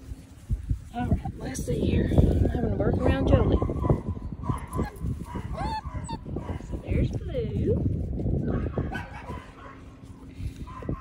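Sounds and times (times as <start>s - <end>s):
puppy crying: 4.5s - 6.7s.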